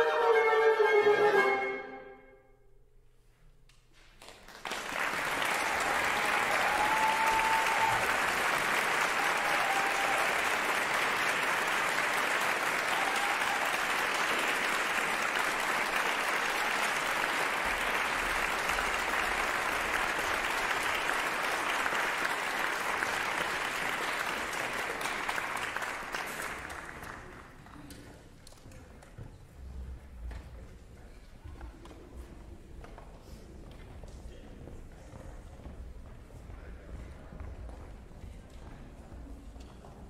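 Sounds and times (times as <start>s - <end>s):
audience applauding: 4.2s - 28.0s.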